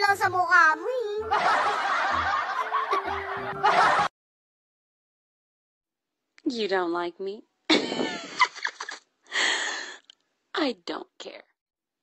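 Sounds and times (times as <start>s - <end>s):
laughter: 1.3s - 4.1s, 7.7s - 9.1s.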